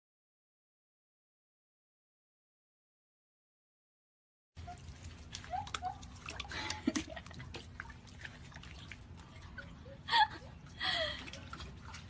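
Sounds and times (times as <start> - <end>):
water splashing and dripping: 4.6 - 12.0.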